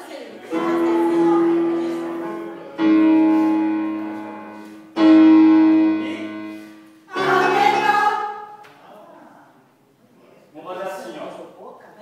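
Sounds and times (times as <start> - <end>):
choir singing held chord: 0.4 - 4.0, 5.7 - 8.6
electronic keyboard chord: 0.5 - 8.2.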